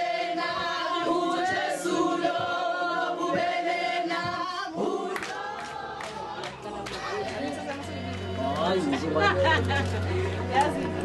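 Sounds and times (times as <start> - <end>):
women singing in chorus: 0.0 - 8.4
hand claps: 5.1 - 8.8, 9.6 - 11.0.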